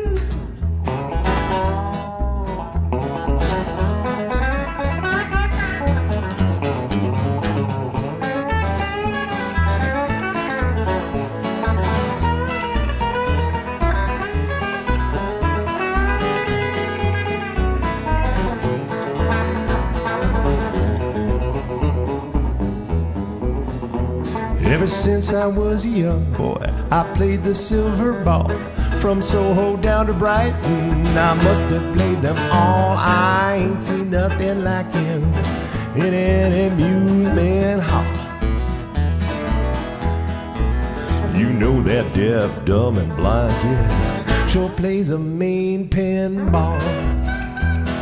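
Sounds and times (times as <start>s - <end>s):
bass line: 0.0s - 48.0s
guitar lead with bending notes: 0.0s - 48.0s.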